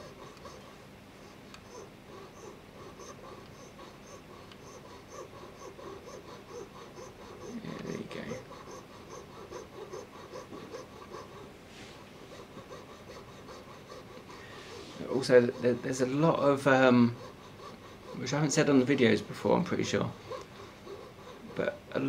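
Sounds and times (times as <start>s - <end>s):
piercing saw rasping on metal: 1.3s - 11.5s, 12.3s - 22.0s
breath: 13.9s - 15.0s.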